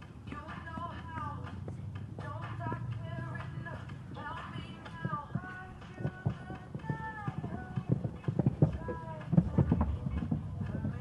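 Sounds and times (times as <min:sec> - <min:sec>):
horse hoofbeats on sand: 0:00.0 - 0:11.0.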